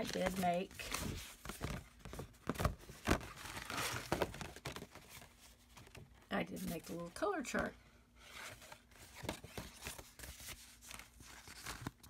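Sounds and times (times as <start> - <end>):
paper rustling and crinkling: 0.0 - 7.0, 8.2 - 12.0.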